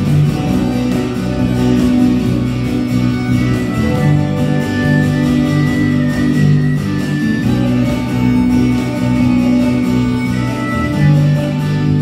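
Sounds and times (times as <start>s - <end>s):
harmonica holding long notes: 0.0s - 12.0s
strummed acoustic guitar: 0.0s - 12.0s.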